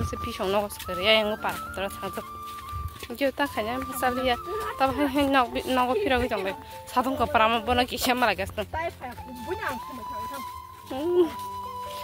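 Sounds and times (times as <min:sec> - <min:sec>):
background music long steady note: 0:00.0 - 0:12.0.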